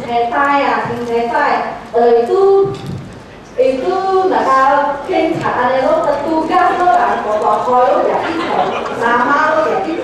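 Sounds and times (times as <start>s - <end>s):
woman telling a story: 0.0s - 2.8s, 3.6s - 10.0s.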